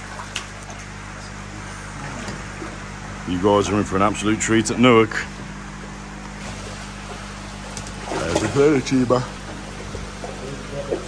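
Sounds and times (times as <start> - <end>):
water splashing and churning: 0.0 - 3.0, 6.4 - 11.0
steady low machine hum: 0.0 - 11.0.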